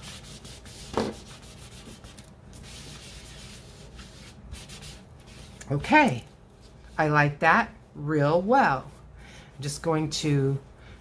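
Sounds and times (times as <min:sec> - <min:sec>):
cloth pad scrubbing paper: 0:00.0 - 0:05.6.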